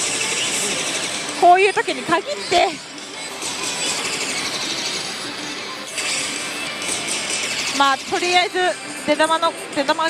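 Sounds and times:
slot machine music and game sounds: 0:00.0 - 0:09.2
din of busy gaming hall: 0:00.0 - 0:10.0.

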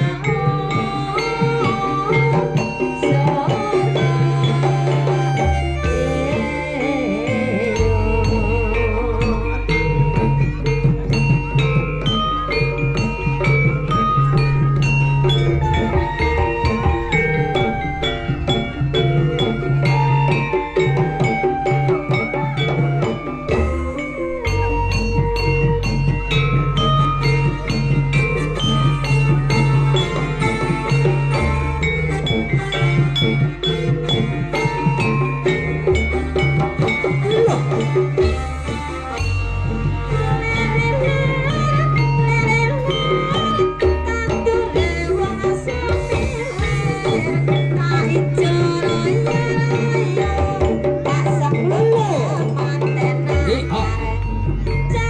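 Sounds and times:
drum strokes: 0:00.0 - 0:55.0
low sustained tone: 0:00.0 - 0:55.0
melody with bending notes: 0:00.0 - 0:55.0
percussion: 0:00.0 - 0:55.0.

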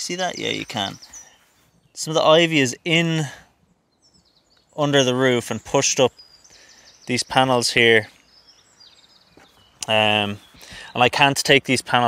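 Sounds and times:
man's voice: 0:00.0 - 0:01.0, 0:02.0 - 0:03.4, 0:04.8 - 0:06.1, 0:07.1 - 0:08.1, 0:09.8 - 0:12.0
faint high bird chirping: 0:00.0 - 0:11.9.

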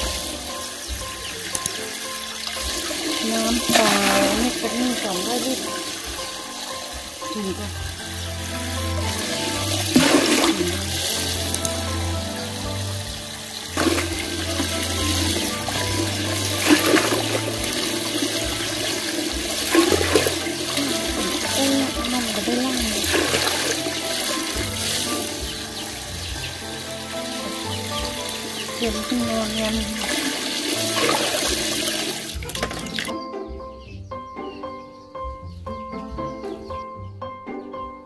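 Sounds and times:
water filling plastic bucket: 0:00.0 - 0:33.2
water splashing: 0:00.0 - 0:33.2
background music: 0:00.0 - 0:38.0.

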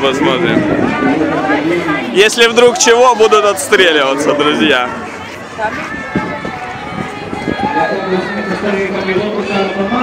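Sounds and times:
crowd voices talking: 0:00.0 - 0:10.0.

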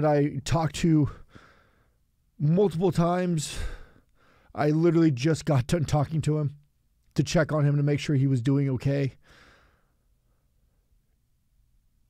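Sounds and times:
man speaking: 0:00.0 - 0:01.2, 0:02.4 - 0:03.8, 0:04.6 - 0:09.2.

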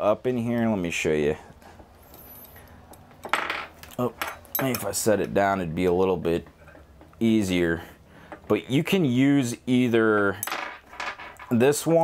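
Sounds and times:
metal tool clinking and scraping: 0:02.0 - 0:03.0, 0:03.6 - 0:05.4.

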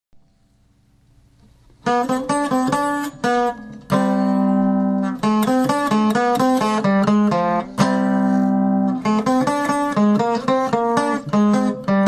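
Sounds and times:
plucked-string chord: 0:01.8 - 0:12.0.

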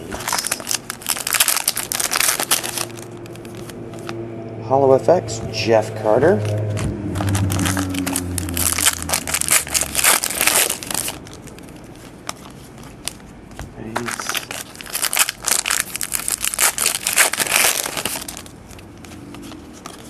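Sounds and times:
wrappers crinkling and tearing: 0:00.0 - 0:04.2, 0:06.4 - 0:20.0.

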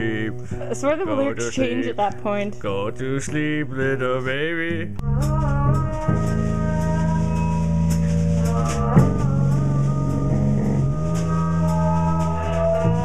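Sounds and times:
drum kit steady beat: 0:00.0 - 0:04.0, 0:05.0 - 0:13.0
electric bass low notes: 0:00.0 - 0:13.0.

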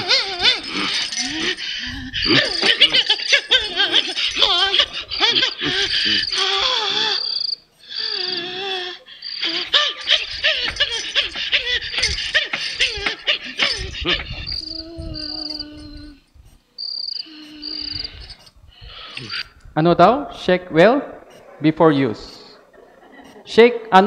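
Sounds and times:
people laughing: 0:00.0 - 0:07.4, 0:09.3 - 0:15.6, 0:21.6 - 0:24.0
high chirping: 0:00.0 - 0:16.2, 0:16.8 - 0:19.5.

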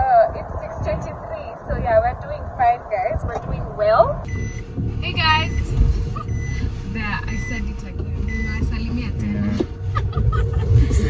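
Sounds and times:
car cabin engine rumble: 0:00.0 - 0:11.0
short high beeps: 0:00.8 - 0:01.7.

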